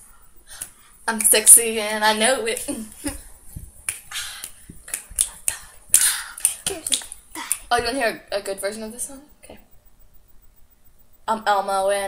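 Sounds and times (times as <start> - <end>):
hand clicks and slaps: 3.8 - 7.7.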